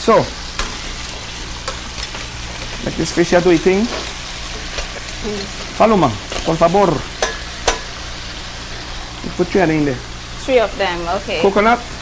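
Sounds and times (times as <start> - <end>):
food sizzling in a hot pan: 0.0 - 12.0.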